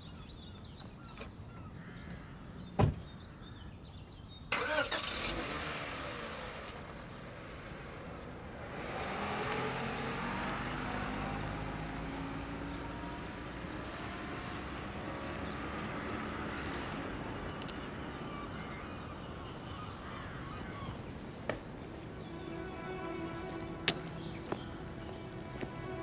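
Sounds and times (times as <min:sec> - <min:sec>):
car engine starting and running: 0:04.5 - 0:20.0, 0:21.6 - 0:26.0.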